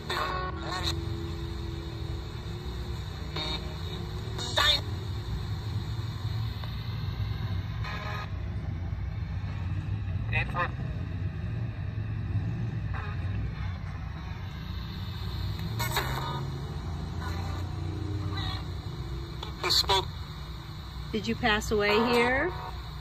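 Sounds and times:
low steady rumble: 0.0s - 23.0s
radio static sweeping stations: 0.0s - 23.0s.

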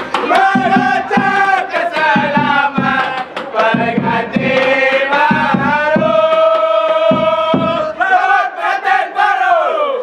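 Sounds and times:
men shouting together: 6.0s - 10.0s.

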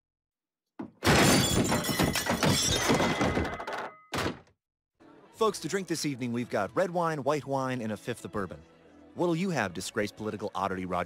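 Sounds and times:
things breaking and clattering: 0.8s - 4.5s
cartoon crash on table: 1.0s - 4.5s.

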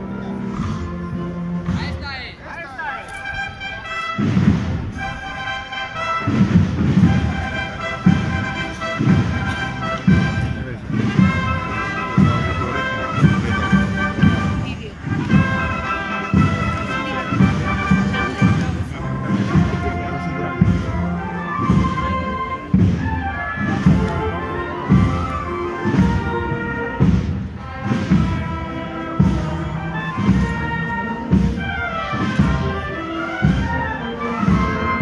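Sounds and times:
wind band playing march: 0.0s - 35.0s
bass drum beating: 6.2s - 28.5s.

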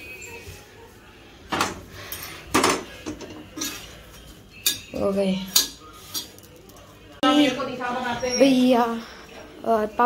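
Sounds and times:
metal spatula clinking on pan: 4.6s - 6.4s.

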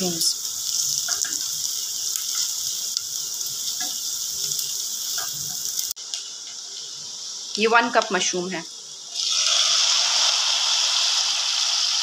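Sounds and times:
onions sizzling in butter: 0.0s - 12.0s.

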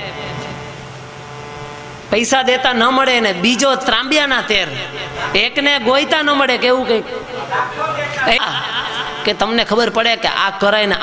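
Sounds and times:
low drone with held tones: 0.0s - 10.4s.

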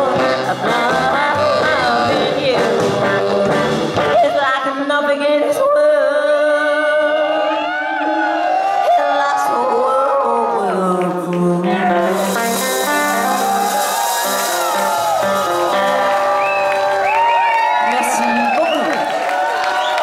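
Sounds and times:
live garage rock band: 0.0s - 4.3s, 11.6s - 18.9s
audience cheering and whooping: 7.1s - 20.0s.

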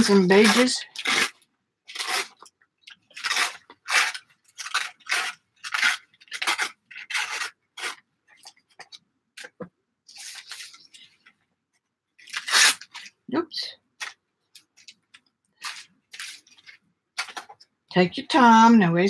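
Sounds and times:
paper tearing in short rips: 0.0s - 2.5s, 3.1s - 8.0s, 12.2s - 13.2s
paper rustling: 0.0s - 11.4s.

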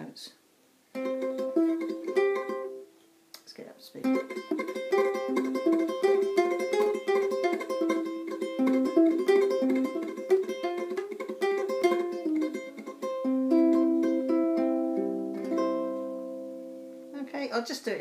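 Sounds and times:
ukulele tremolo fingerstyle: 0.9s - 2.9s, 4.0s - 16.9s.

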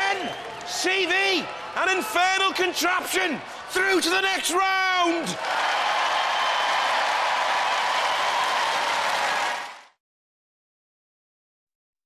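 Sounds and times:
audience applauding and cheering: 0.0s - 10.0s.

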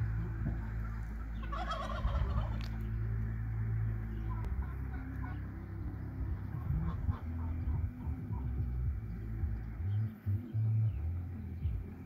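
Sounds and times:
steady low hum: 0.0s - 12.0s
fowl warbling call: 0.6s - 2.9s.

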